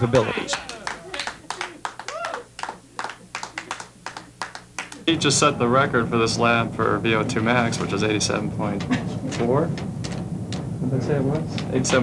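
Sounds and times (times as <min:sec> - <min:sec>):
hands clapping: 0:00.0 - 0:05.1
low steady hum: 0:00.0 - 0:12.0.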